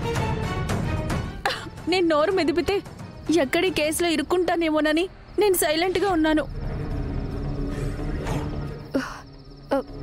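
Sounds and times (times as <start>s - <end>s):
crickets chirping: 1.5s - 10.0s.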